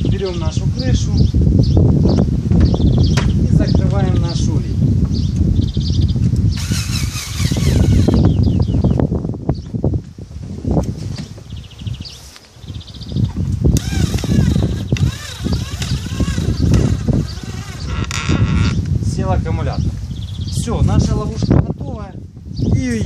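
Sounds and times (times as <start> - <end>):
drill motor whining: 6.6 - 8.3, 13.8 - 18.8.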